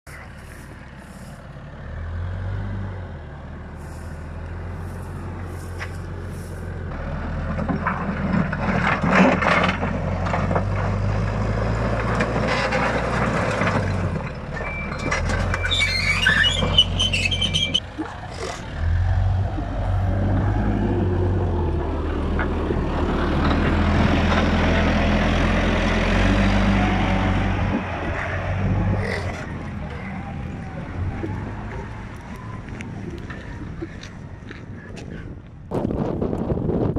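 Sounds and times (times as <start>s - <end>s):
digger diesel engine running: 0.1s - 35.4s
high metallic screech: 15.6s - 17.8s.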